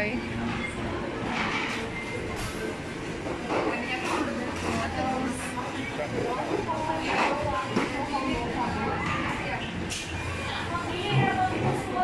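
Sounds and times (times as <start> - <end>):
indistinct chatter: 0.0 - 12.0.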